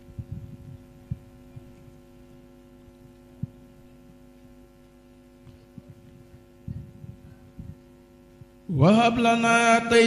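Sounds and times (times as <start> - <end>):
dull low thuds: 0.0 - 1.7, 3.4 - 3.8, 5.8 - 8.6
electrical mains hum: 0.0 - 10.0.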